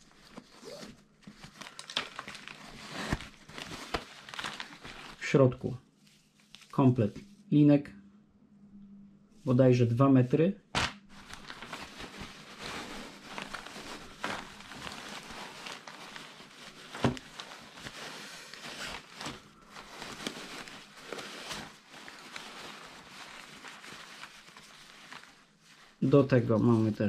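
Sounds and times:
fabric rustling and crinkling: 0.0s - 7.5s, 10.7s - 27.0s.

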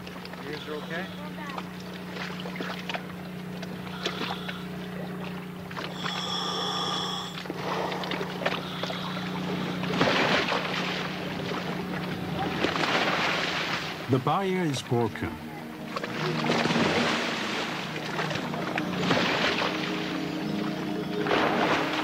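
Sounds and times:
boat engine idling: 0.0s - 22.0s
high pitched tone: 5.9s - 7.5s.

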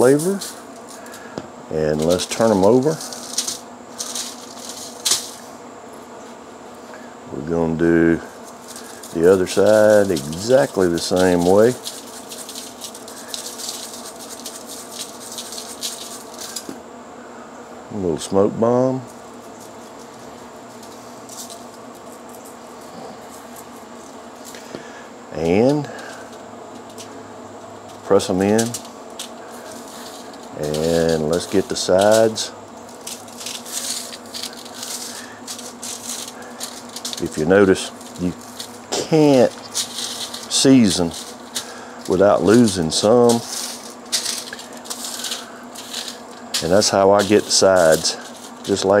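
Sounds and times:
seasoning grains pattering on steak: 0.0s - 5.5s, 8.3s - 16.8s, 27.8s - 49.0s
aluminium foil crinkling: 0.0s - 5.6s, 8.0s - 16.8s, 19.1s - 49.0s
dry rub scraping: 8.3s - 16.7s, 27.9s - 49.0s.

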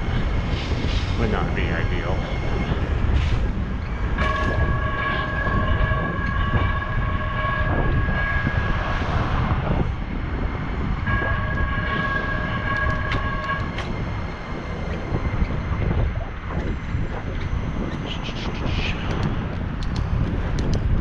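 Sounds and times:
wind rushing over microphone: 0.0s - 21.0s
high-pitched squeal: 0.9s - 19.3s.

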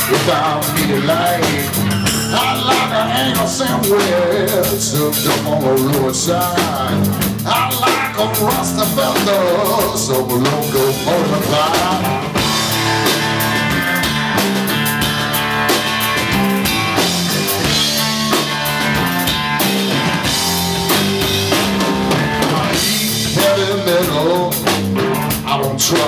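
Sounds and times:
drum kit beat: 0.0s - 26.0s
electric guitars: 0.0s - 26.0s.

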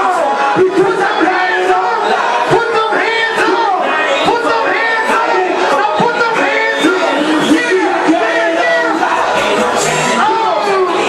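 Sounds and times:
loud live music: 0.0s - 11.0s
man singing or shouting: 0.0s - 11.0s.

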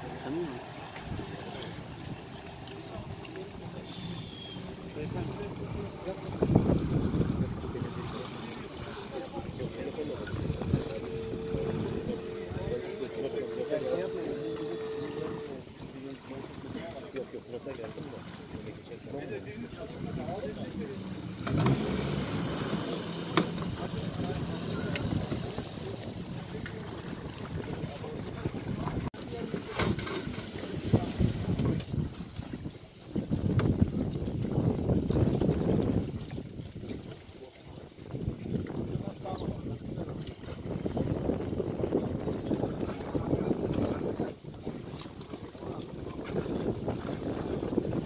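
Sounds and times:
people talking and calling out: 2.5s - 22.0s
wind on microphone: 2.9s - 15.5s, 21.5s - 48.0s.

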